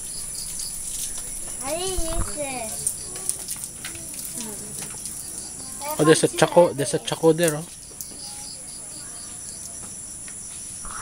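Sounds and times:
tropical insects chorus: 0.0s - 11.0s.

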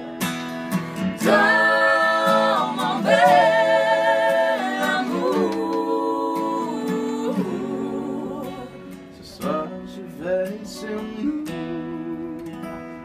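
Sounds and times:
acoustic guitar: 0.0s - 13.0s
voices singing in harmony: 1.2s - 9.5s.

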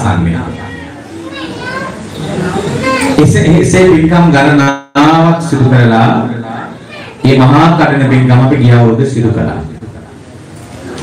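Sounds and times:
man speaking through microphone: 0.0s - 0.7s, 3.2s - 10.1s
children's voices: 0.4s - 3.4s, 6.3s - 7.8s.

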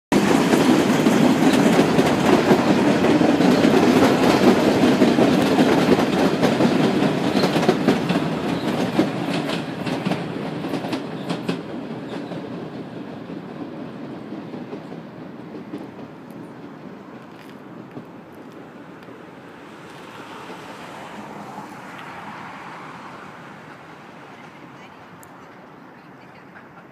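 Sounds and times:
subway train wheels clattering: 0.1s - 26.9s.

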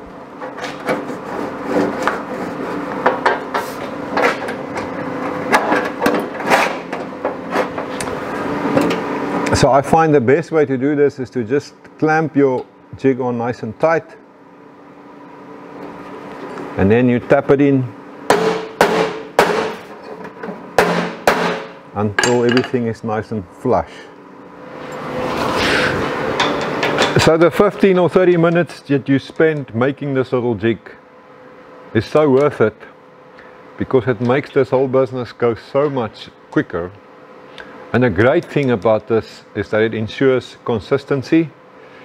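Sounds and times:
steady low hum: 0.0s - 42.0s
hammer striking metal: 18.3s - 19.8s, 20.8s - 22.8s.

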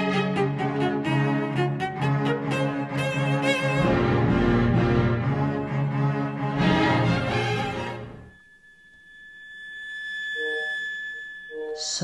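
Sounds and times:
fainter higher electronic tone: 6.6s - 12.0s
high pure electronic tone: 6.6s - 12.0s.

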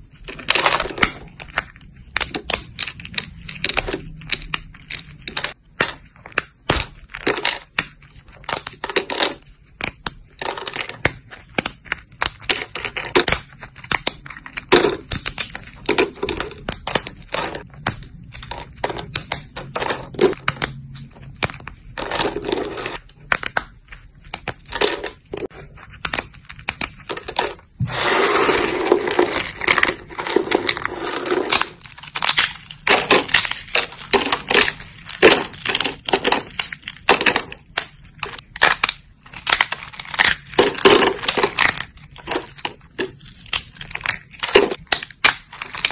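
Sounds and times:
dry soap cracking and crunching: 0.0s - 27.8s, 28.4s - 45.9s.

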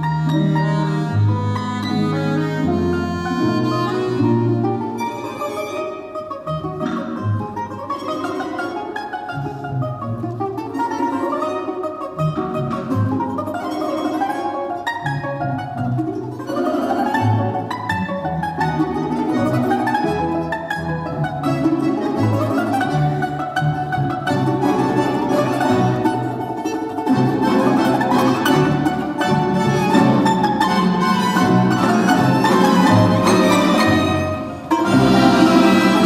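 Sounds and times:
folk orchestra of plucked strings: 0.0s - 36.0s
plucked domra melody: 0.0s - 36.0s.

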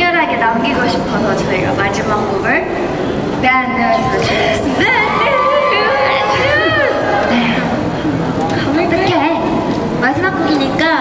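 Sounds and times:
crowd background noise: 0.0s - 11.0s
voices talking and calling out: 0.0s - 11.0s.

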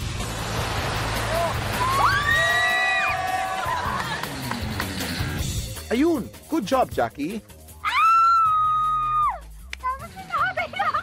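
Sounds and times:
background music: 0.0s - 11.0s
voices whooping: 1.2s - 4.2s, 7.8s - 9.4s.

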